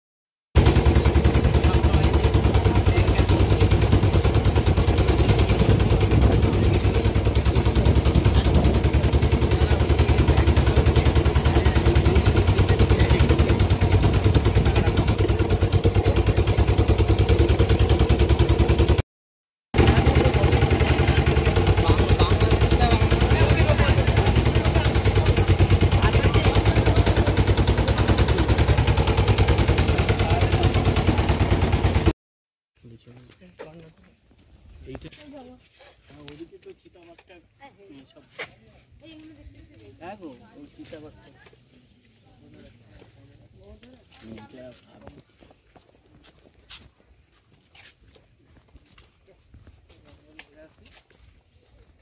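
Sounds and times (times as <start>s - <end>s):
small engine chugging: 0.6s - 19.0s, 19.8s - 32.2s, 32.8s - 52.0s.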